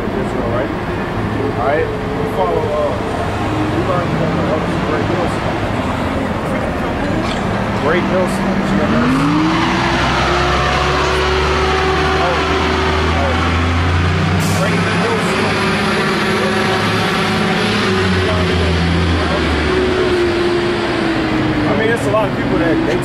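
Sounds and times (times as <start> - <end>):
engine whine: 0.0 - 23.0
heavy vehicle engine drone: 0.0 - 23.0.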